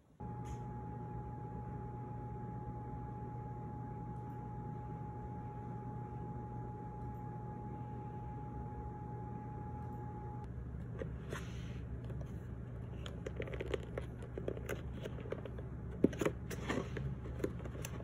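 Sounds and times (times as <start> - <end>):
appliance humming: 0.0 - 18.0
thin steady whine: 0.0 - 18.0.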